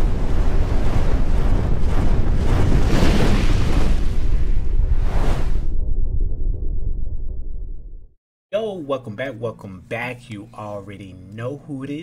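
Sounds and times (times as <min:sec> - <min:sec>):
deep rushing rumble: 0:00.0 - 0:08.2
whoosh: 0:00.0 - 0:08.2.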